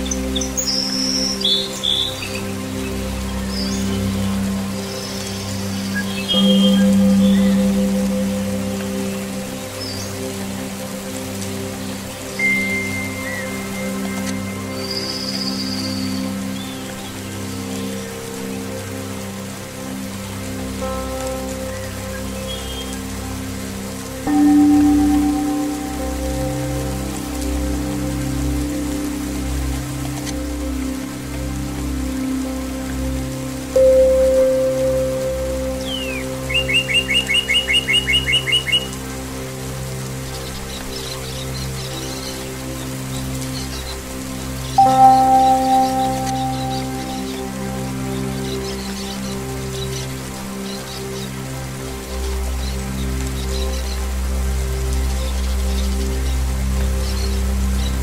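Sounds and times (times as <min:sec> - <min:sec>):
steady rain: 0:00.0 - 0:58.0
calm ringing tones music: 0:06.3 - 0:11.7, 0:12.3 - 0:16.3, 0:20.8 - 0:33.1, 0:33.7 - 0:38.8, 0:44.7 - 0:49.6
birds chirping: 0:11.9 - 0:18.6, 0:33.8 - 0:39.0, 0:44.8 - 0:51.3.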